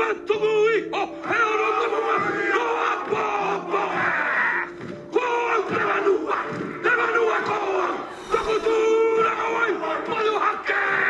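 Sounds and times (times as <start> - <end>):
men chanting battle cries: 0.0 - 11.0.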